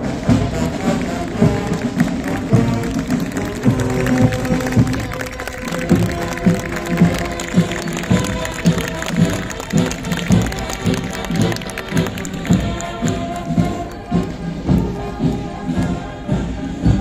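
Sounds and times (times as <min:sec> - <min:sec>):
brass marching band playing: 0:00.0 - 0:17.0.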